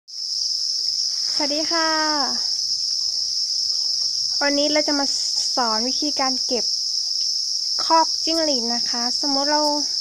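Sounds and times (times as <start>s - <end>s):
crickets chirping: 0.1s - 10.0s.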